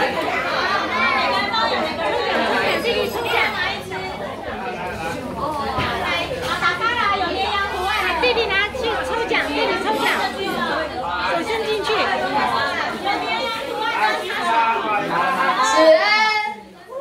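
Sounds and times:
children and adults chattering: 0.0 - 17.0.

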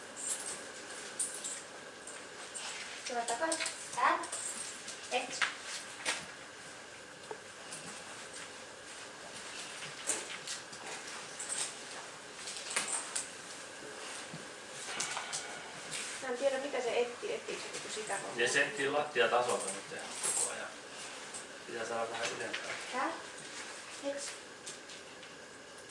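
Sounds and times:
faint steady hum: 0.0 - 25.9.

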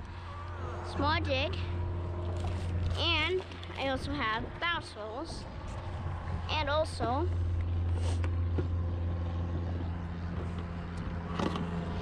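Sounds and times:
distant engine droning: 0.0 - 12.0.

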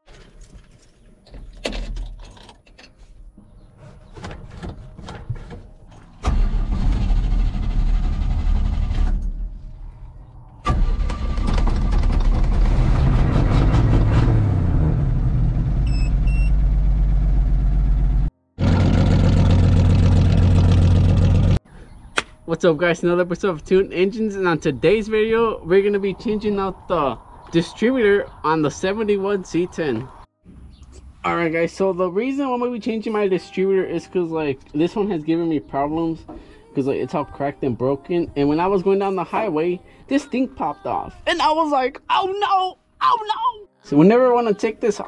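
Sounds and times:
engine starting and running: 6.0 - 21.6.

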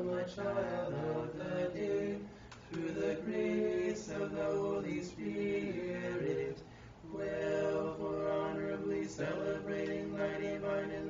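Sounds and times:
voices chanting sustained notes: 0.0 - 11.0
person breathing: 6.6 - 7.0.

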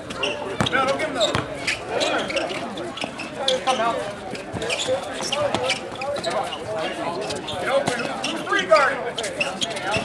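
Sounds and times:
basketball bouncing on court: 0.6 - 1.5.

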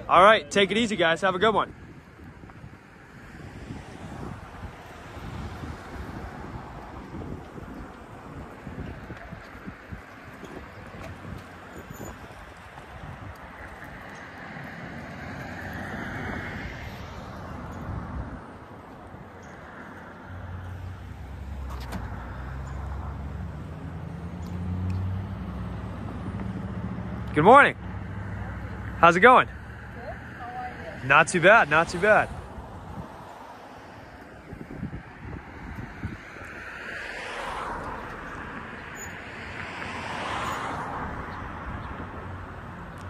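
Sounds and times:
road traffic noise: 0.0 - 43.0
wind on microphone: 1.7 - 14.2, 14.8 - 19.3, 32.3 - 36.8.

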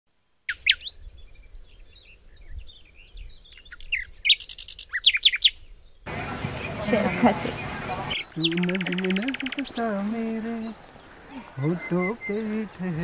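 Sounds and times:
bird chirping and whistling: 8.0 - 9.9, 11.0 - 12.8.

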